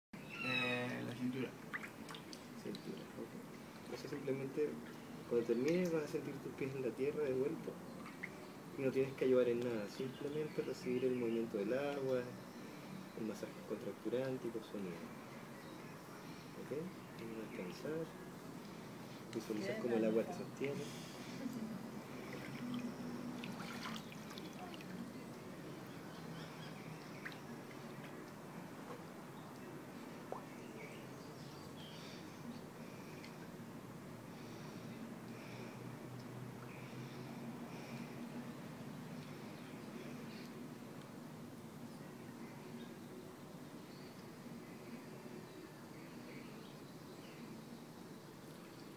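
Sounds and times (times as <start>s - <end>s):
pool water lapping: 1.2s - 6.5s, 7.3s - 8.8s, 16.7s - 41.7s
small splashes and drips: 1.5s - 4.0s, 7.9s - 8.5s, 22.1s - 30.7s.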